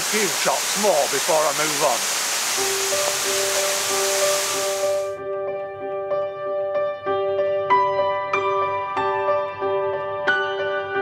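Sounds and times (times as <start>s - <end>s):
waterfall rushing: 0.0s - 5.2s.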